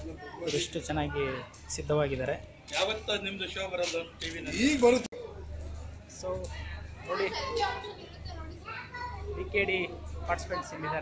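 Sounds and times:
chatter of young voices: 0.0s - 11.0s.

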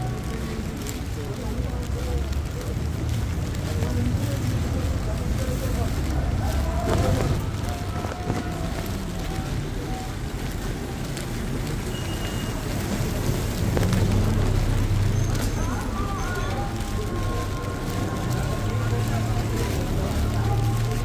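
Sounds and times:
indistinct voices: 0.0s - 21.0s
rain: 0.0s - 21.0s
traffic rumble: 0.0s - 21.0s.

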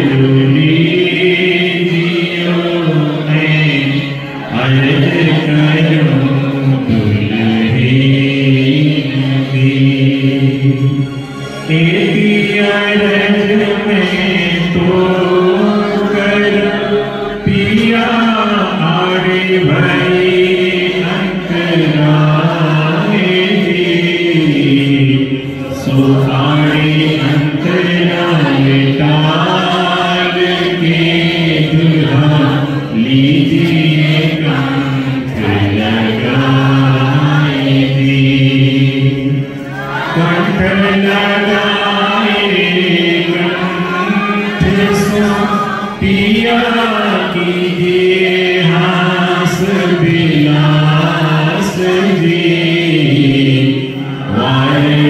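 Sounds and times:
person chanting a hymn: 0.0s - 55.0s.

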